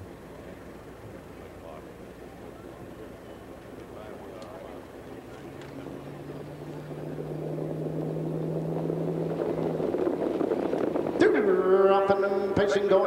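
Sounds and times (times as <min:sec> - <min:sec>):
low steady hum: 0:00.0 - 0:13.0
racetrack background noise: 0:00.0 - 0:13.0.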